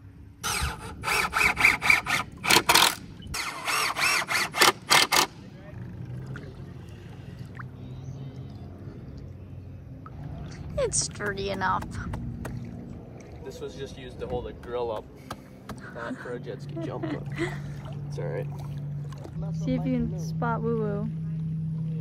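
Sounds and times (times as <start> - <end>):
faint low hum: 5.4 - 14.8.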